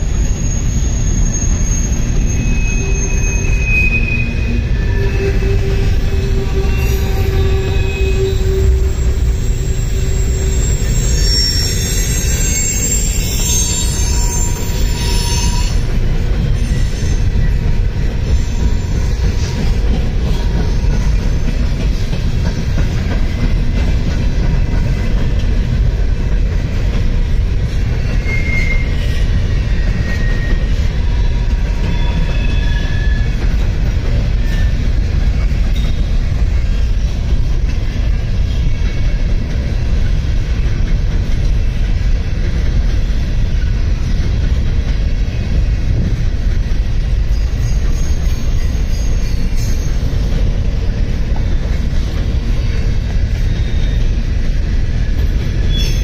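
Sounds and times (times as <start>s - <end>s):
thin wheel squeals: 0.0s - 15.9s, 28.2s - 33.4s, 34.4s - 34.8s, 47.3s - 50.2s, 53.3s - 54.2s, 55.7s - 56.0s
train wheels rumbling on rail: 0.0s - 56.0s.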